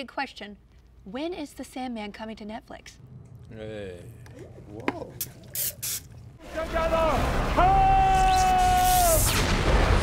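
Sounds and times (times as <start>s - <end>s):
sharp hissing bursts: 5.6s - 6.1s.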